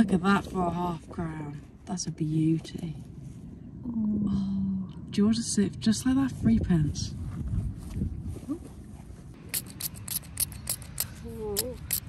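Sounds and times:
low steady rumble: 0:00.0 - 0:12.0
rapid clicking: 0:09.4 - 0:12.0.

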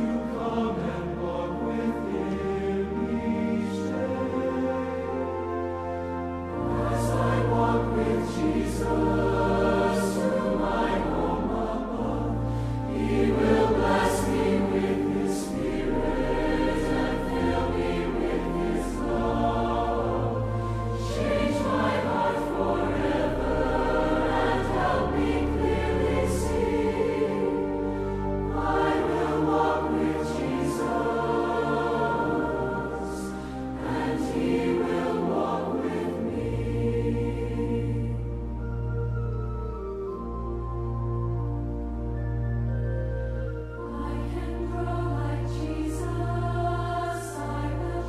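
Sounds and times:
choir singing a hymn: 0:00.0 - 0:40.2, 0:41.4 - 0:48.0
pipe organ: 0:00.0 - 0:48.0.

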